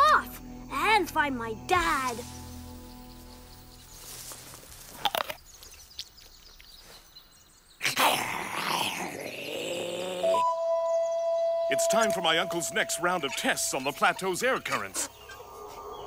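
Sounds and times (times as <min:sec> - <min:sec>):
jungle ambience: 0:00.0 - 0:16.0
cartoon music: 0:10.1 - 0:14.9.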